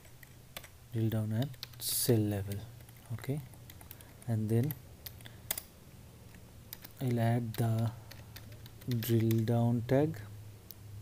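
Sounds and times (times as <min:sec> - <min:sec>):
computer keyboard keystrokes: 0:01.4 - 0:01.8, 0:02.5 - 0:05.7, 0:06.3 - 0:09.5.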